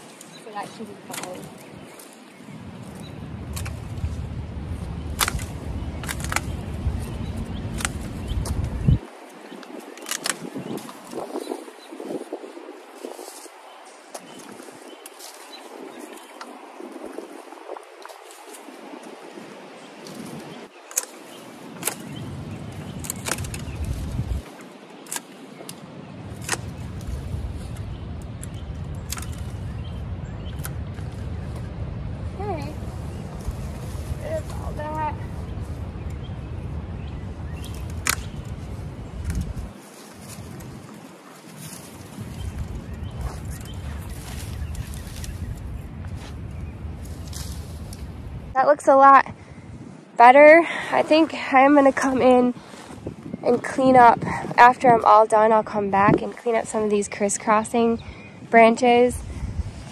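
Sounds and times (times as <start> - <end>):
wind rumble on microphone: 0.0 - 59.9
loppers cutting woody canes: 1.0 - 1.7, 5.1 - 8.8, 9.6 - 11.3, 20.0 - 27.0, 28.3 - 29.5, 37.6 - 38.6.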